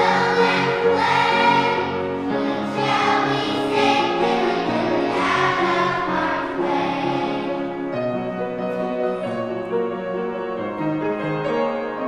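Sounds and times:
children's choir singing: 0.0s - 8.0s
musical accompaniment: 0.0s - 12.0s.

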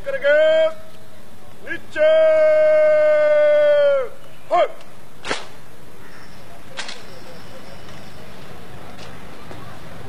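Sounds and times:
sharp crack: 4.8s - 5.6s.

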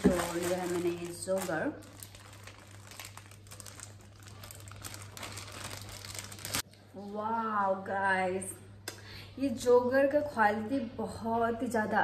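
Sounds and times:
plastic packaging crinkling: 0.0s - 6.9s.

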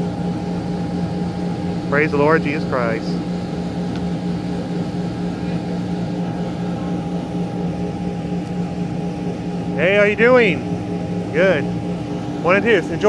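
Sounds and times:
constant noise wash: 0.0s - 13.0s
high whine: 0.0s - 13.0s
low mechanical hum: 0.0s - 13.0s.

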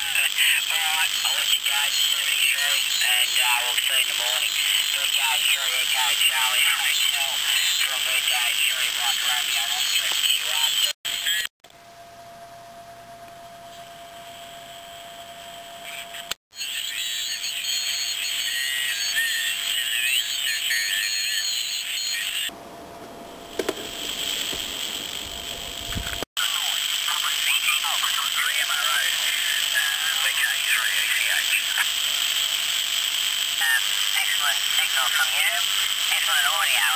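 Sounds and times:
hissy radio band noise: 0.0s - 11.5s, 15.8s - 36.9s
indistinct radio voices: 0.0s - 11.5s, 15.8s - 22.6s, 23.6s - 36.9s
steady radio whistle: 0.6s - 22.6s.

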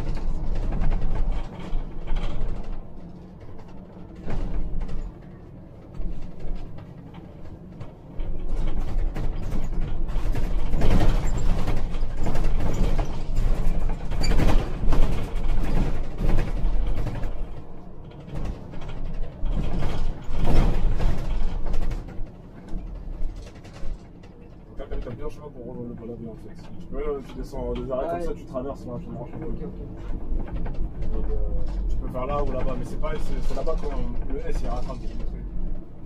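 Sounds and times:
bus body creaking and rattling: 0.0s - 36.0s
bus engine and road rumble: 0.0s - 36.0s.

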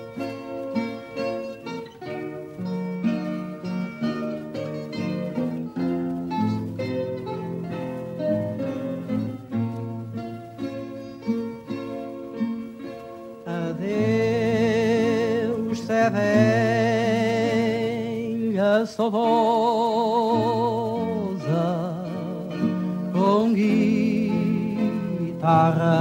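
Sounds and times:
guitar accompaniment: 0.0s - 26.0s
plucked guitar melody: 0.0s - 26.0s.

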